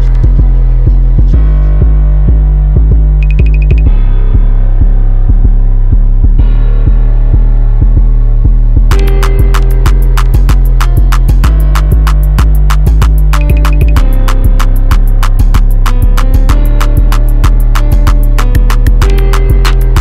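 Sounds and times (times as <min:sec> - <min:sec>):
hi-hats: 0:00.0 - 0:20.0
sustained bass line: 0:00.0 - 0:20.0
trap instrumental beat: 0:00.0 - 0:20.0.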